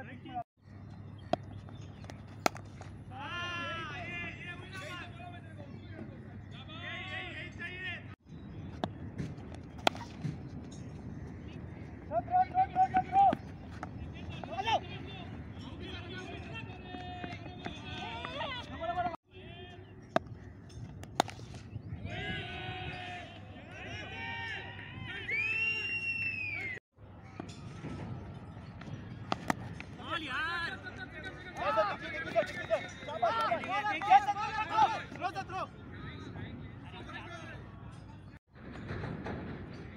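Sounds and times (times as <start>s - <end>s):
players calling out and chattering: 0.0s - 25.9s, 27.4s - 38.4s
bat striking ball: 1.2s - 3.1s, 8.7s - 10.8s, 20.1s - 21.8s, 29.1s - 30.0s
rising-and-falling whistle: 25.3s - 26.8s.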